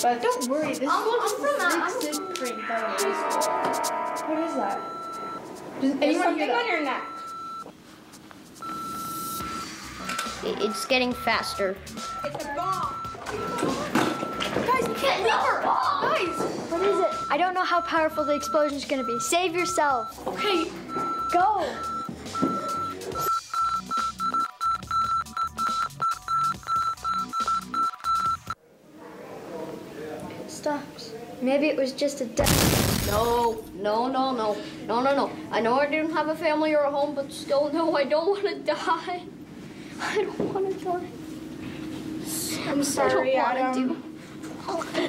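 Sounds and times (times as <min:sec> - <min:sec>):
low pulsing rhythm: 0:00.0 - 0:07.6
electronic countdown beep: 0:00.0 - 0:07.7, 0:08.6 - 0:28.6.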